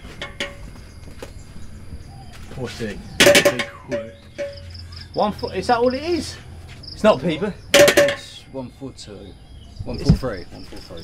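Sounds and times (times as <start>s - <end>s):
insects chirping: 0.0s - 11.0s.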